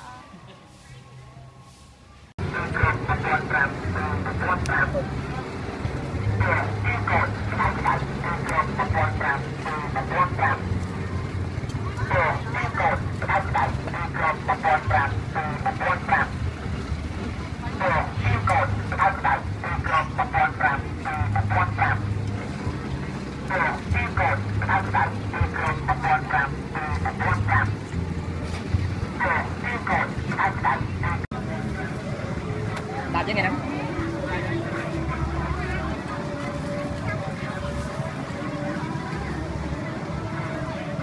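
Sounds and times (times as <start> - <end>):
people talking: 0.0 - 1.6, 2.4 - 41.0
low engine hum: 0.0 - 41.0.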